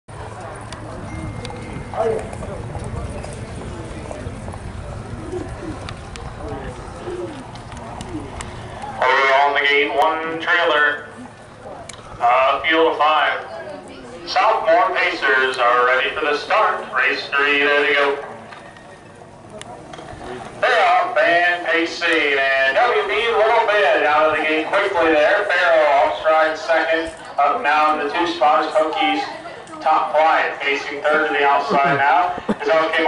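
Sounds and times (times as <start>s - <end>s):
steady low rumble: 0.1s - 13.3s
outdoor background noise: 0.1s - 33.0s
bird cooing: 4.9s - 8.4s
announcer's voice: 9.0s - 11.1s, 14.3s - 18.3s, 20.6s - 33.0s.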